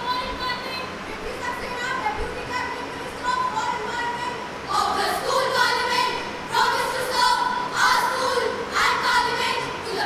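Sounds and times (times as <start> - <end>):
girls reciting in unison: 3.5 - 10.0.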